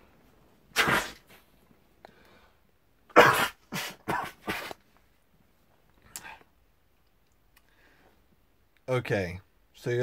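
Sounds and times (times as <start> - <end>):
man blowing nose into tissue: 0.7 - 1.4, 3.2 - 4.8.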